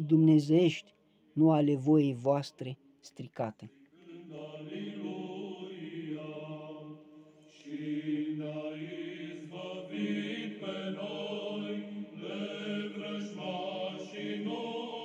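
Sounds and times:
slow choral chant: 3.7 - 15.0.

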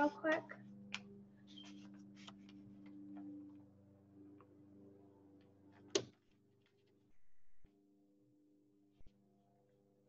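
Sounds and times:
steady low hum: 7.1 - 7.7.

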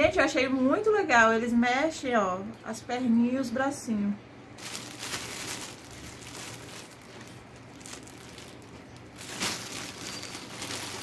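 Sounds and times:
plastic bag crinkling: 4.6 - 11.0.

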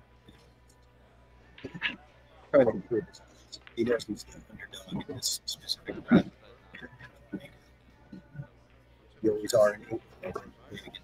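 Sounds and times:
man murmuring: 4.8 - 7.5.

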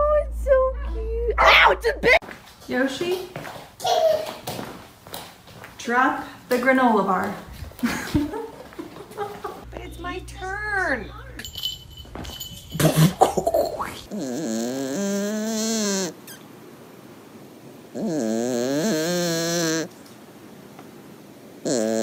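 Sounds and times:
kitten snoring: 13.9 - 16.1, 17.9 - 19.9, 21.6 - 22.0.

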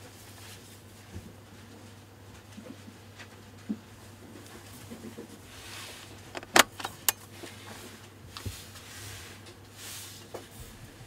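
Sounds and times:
metallic clicks of lens mount locking: 6.3 - 7.2.

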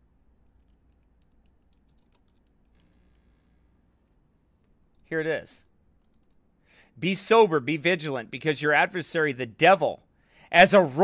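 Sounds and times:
rapid keyboard typing: 0.4 - 3.2, 6.0 - 6.4.

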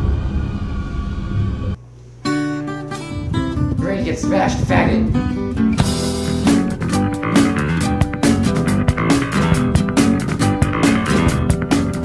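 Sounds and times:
loud low rumble: 0.0 - 1.8.

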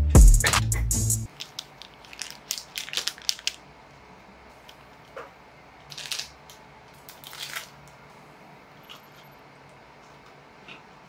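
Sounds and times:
plastic wrapper crinkling: 1.3 - 3.6, 5.8 - 7.9.

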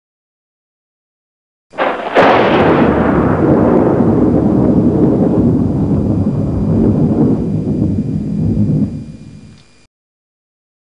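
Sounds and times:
loud low rumbling: 1.8 - 9.6.

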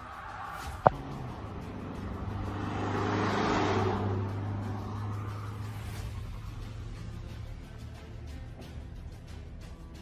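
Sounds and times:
vehicle driving past: 0.0 - 8.1.

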